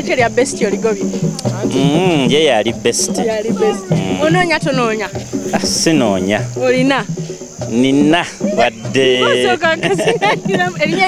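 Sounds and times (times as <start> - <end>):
crickets chirring: 0.0 - 11.0
voices making drawn-out calls: 0.0 - 11.0.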